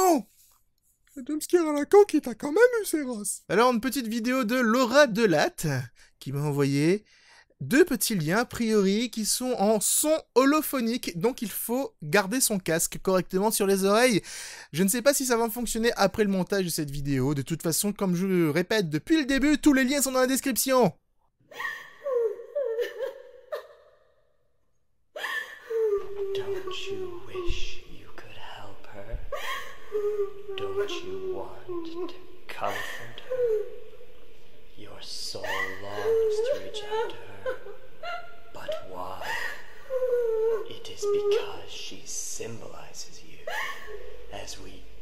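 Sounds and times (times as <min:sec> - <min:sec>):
person gasping breath: 0:14.2 - 0:14.7.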